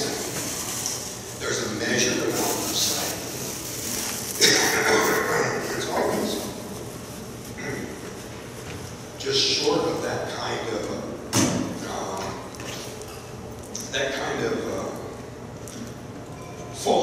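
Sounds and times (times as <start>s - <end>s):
man speaking over public address: 0.0s - 0.4s, 1.4s - 3.5s, 4.4s - 6.6s, 9.2s - 12.6s, 13.8s - 15.2s, 16.7s - 17.0s.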